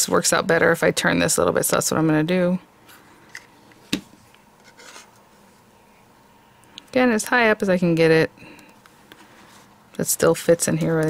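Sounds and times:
paper rubbing and scraping: 4.6s - 5.2s.

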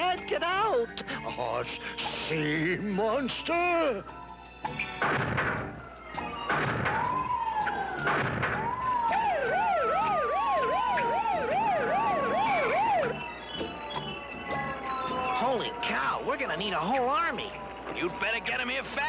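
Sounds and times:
police siren wailing: 3.8s - 19.0s.

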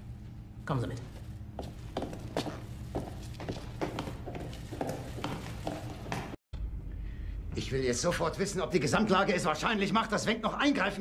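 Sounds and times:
boot footsteps on concrete: 1.5s - 6.4s.

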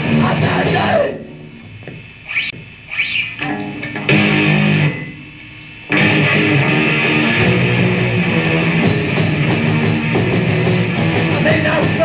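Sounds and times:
punk band playing loudly: 0.0s - 1.2s, 3.4s - 5.2s, 5.9s - 12.0s.

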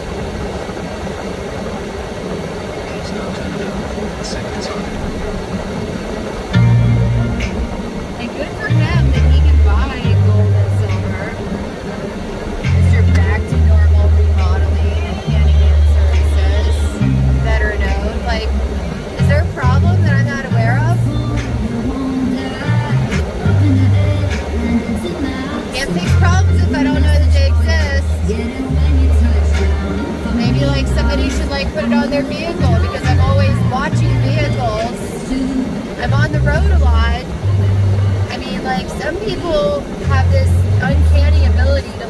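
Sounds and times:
song on car stereo: 2.7s - 42.0s
heavy bass line: 3.0s - 42.0s
person speaking: 8.2s - 11.5s, 12.6s - 37.3s
person singing: 19.2s - 36.9s.

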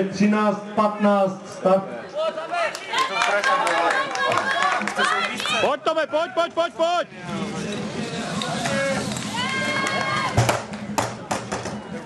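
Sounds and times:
onlookers shouting encouragement: 8.6s - 10.4s.

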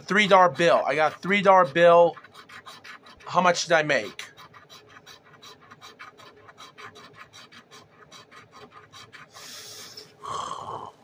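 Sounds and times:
fingernail scraping lottery ticket: 0.0s - 10.1s.

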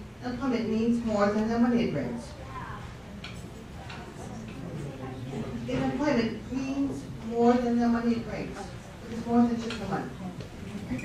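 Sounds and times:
large hall room noise: 0.0s - 11.0s.

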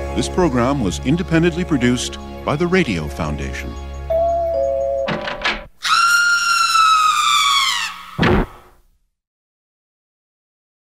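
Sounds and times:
thump: 8.2s - 8.8s.

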